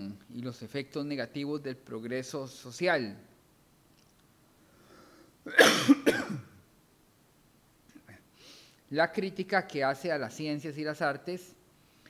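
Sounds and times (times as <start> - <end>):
man coughing: 5.5 - 6.6.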